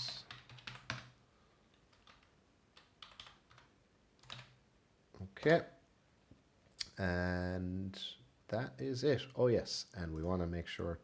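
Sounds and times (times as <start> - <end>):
computer keyboard keystrokes: 0.0 - 1.1, 1.9 - 4.6.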